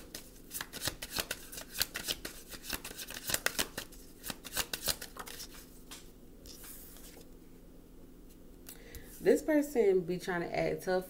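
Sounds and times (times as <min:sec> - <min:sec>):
cards being shuffled: 0:00.0 - 0:07.3.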